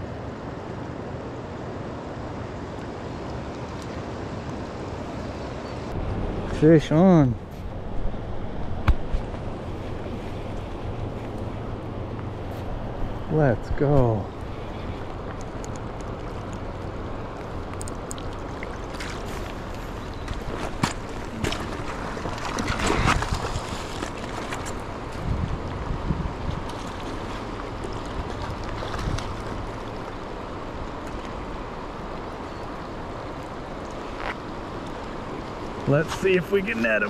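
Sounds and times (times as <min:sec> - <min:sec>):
river water rushing: 0:00.1 - 0:37.0
wind rumbling on microphone: 0:07.4 - 0:35.9.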